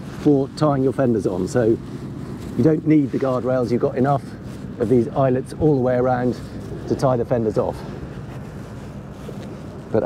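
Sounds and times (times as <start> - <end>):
motorboat engine: 0.0 - 10.0.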